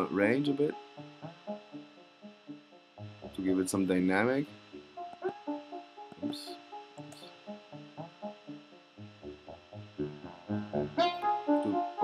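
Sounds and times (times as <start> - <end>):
brassy synth arpeggio: 9.3 - 12.0.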